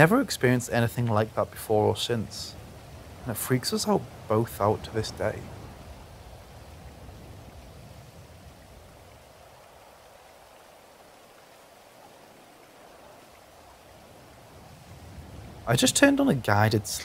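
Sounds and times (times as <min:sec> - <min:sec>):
faint rushing ambience: 0:00.0 - 0:17.0.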